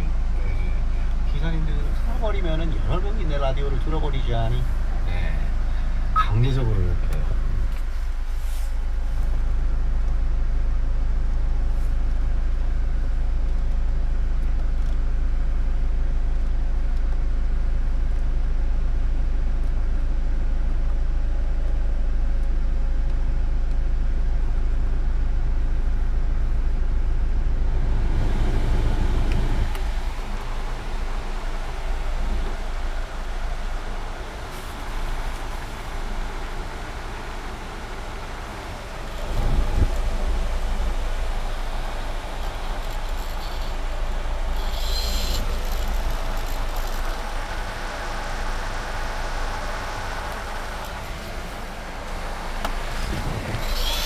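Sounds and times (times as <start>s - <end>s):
car blower fan and rushing air: 0.0s - 54.0s
low hum: 0.0s - 54.0s.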